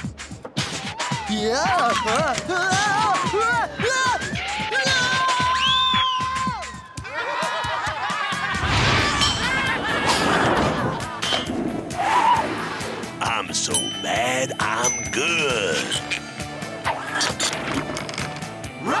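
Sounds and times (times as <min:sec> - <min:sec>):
background music: 0:00.0 - 0:19.0
clattering sound effects: 0:17.1 - 0:18.6.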